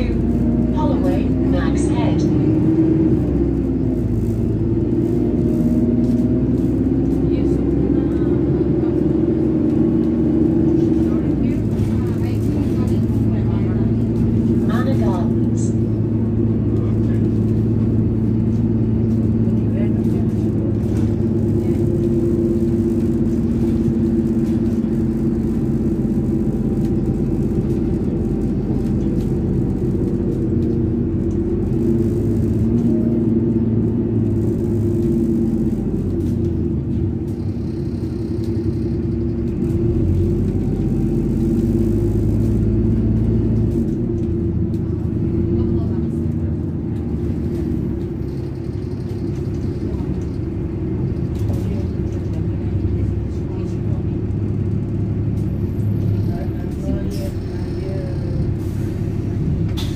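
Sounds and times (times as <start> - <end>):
bus engine running inside: 0.0 - 59.9.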